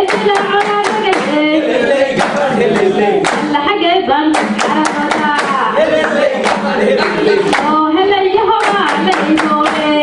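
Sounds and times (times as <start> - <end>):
sharp hand claps: 0.0 - 1.4, 2.2 - 3.6, 4.3 - 7.8, 8.6 - 10.0
group singing folk song: 0.0 - 10.0.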